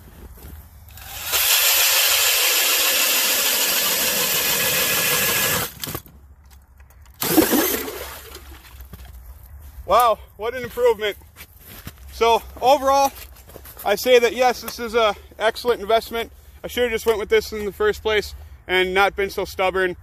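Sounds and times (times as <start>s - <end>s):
drill grinding through ice: 0.9s - 5.8s.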